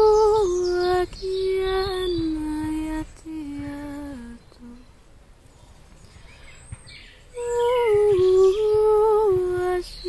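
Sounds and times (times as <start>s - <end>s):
faint bird chirp: 0.0s - 10.0s.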